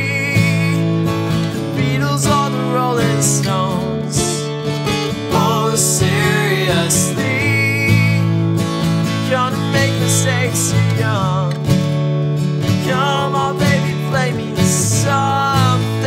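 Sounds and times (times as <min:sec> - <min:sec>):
man singing: 0:00.0 - 0:04.6, 0:05.2 - 0:08.4, 0:09.1 - 0:11.8, 0:12.7 - 0:16.0
acoustic guitar strumming: 0:00.0 - 0:16.0.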